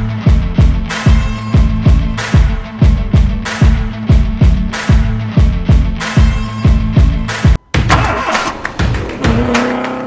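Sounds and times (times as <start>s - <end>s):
music track with a beat: 0.0s - 9.5s
car engine starting and revving: 7.9s - 10.0s.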